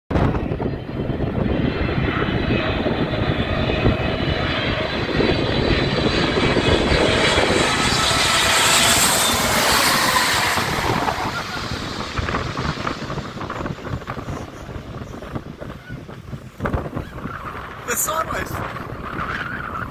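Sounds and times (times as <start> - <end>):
jet airliner passing overhead: 0.1 - 19.9
faint high engine whine: 0.4 - 19.9.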